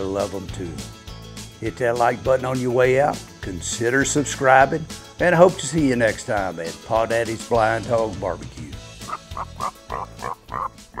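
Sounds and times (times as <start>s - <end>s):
background music: 0.0s - 11.0s
pig grunting: 9.0s - 11.0s.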